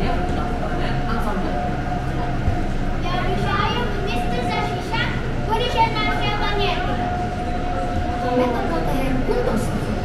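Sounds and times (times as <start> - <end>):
children speaking: 0.0 - 10.0
crowd chatter: 0.0 - 10.0
steady hum: 0.0 - 10.0.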